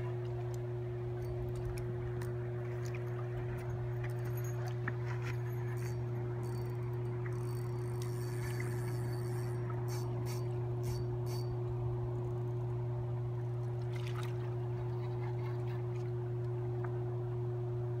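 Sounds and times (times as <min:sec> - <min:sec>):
low electrical hum: 0:00.0 - 0:18.0
high steady tone: 0:03.5 - 0:12.8.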